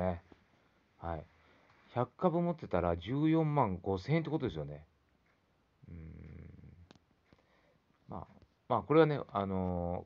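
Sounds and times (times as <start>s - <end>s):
man humming: 5.8s - 6.9s.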